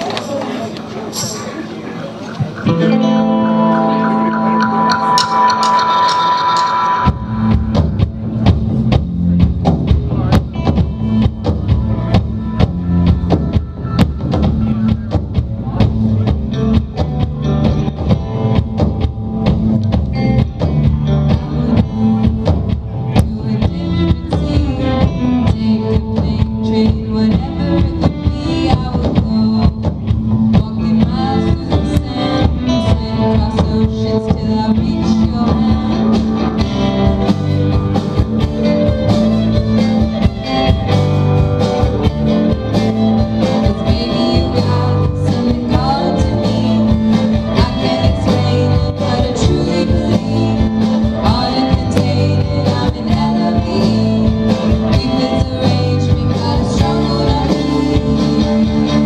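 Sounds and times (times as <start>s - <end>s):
rock band playing: 2.4s - 59.0s
ringing guitar chord: 2.7s - 8.2s
drums playing steady beat: 4.5s - 59.0s.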